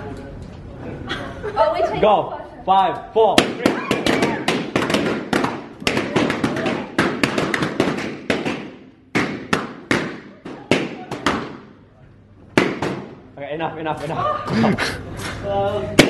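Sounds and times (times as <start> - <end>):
balloons popping: 3.4 - 11.7, 12.5 - 13.2.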